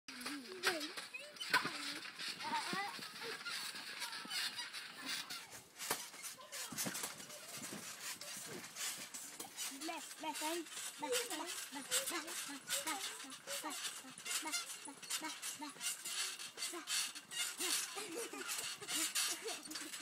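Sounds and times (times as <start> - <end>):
children squealing and babbling: 0.2 - 5.6, 6.2 - 20.0
thumps on trampoline: 0.2 - 20.0.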